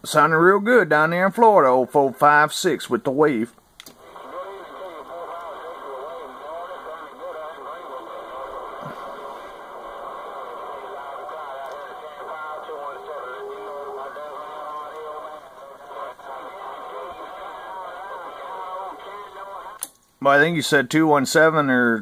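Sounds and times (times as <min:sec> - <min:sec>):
radio static hiss: 0:02.1 - 0:20.8
garbled radio voices: 0:04.0 - 0:19.8.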